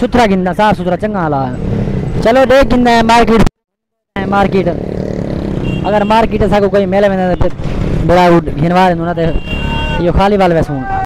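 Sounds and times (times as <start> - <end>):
man talking: 0.0 - 1.6, 2.2 - 3.5, 4.2 - 4.9, 5.8 - 9.4, 10.0 - 10.9
busy street traffic: 0.0 - 11.0
motorcycle and car engines running: 4.2 - 9.0.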